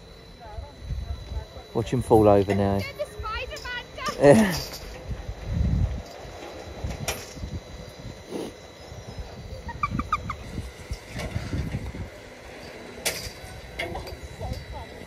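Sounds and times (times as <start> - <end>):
wind gusts on microphone: 0.6 - 1.7, 5.0 - 12.4.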